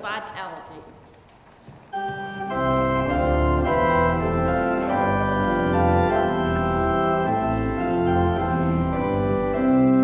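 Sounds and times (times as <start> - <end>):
organ sustained chords: 1.9 - 10.0.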